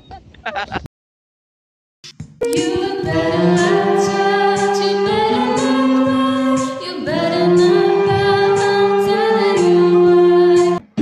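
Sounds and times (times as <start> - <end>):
group singing a carol: 2.4 - 10.8.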